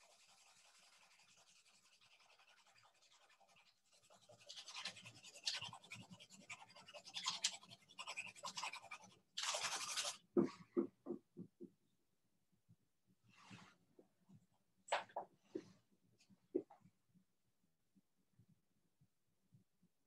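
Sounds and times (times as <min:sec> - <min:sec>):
pencil scratching on paper: 0:00.0 - 0:10.4.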